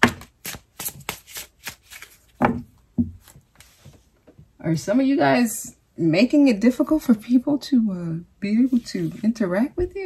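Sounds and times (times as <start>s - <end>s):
cards being shuffled: 0.0s - 2.4s.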